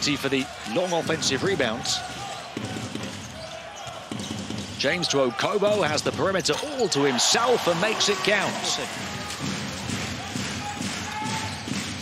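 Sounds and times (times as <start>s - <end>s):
murmur of arena crowd: 0.0s - 12.0s
basketball dribbled on court: 0.7s - 4.8s, 9.0s - 12.0s.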